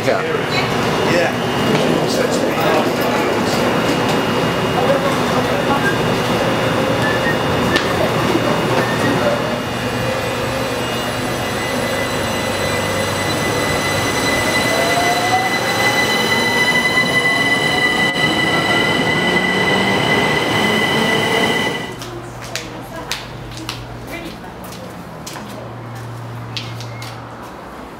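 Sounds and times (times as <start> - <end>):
electric train whine: 0.0 - 22.3
rising whine of accelerating train: 0.0 - 22.4.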